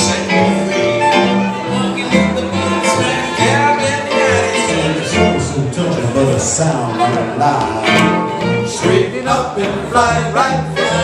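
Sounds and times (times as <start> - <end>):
clarinet melody: 0.0 - 5.8
plucked upright bass: 0.0 - 11.0.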